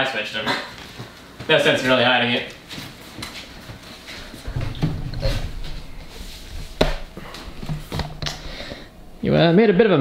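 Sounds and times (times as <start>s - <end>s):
shuffling and rustling: 0.8s - 9.1s
knocks: 4.5s - 6.0s.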